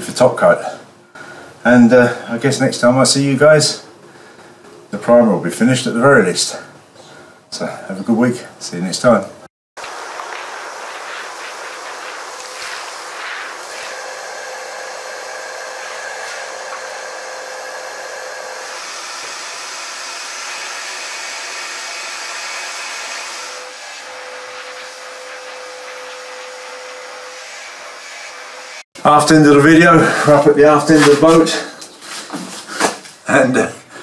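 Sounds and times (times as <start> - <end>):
shop vacuum running: 9.8 - 28.8.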